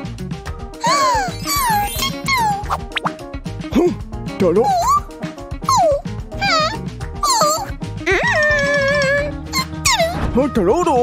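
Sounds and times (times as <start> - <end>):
light background music: 0.0 - 11.0
cartoon character vocal sounds: 0.8 - 2.8, 4.6 - 5.1, 5.7 - 10.2.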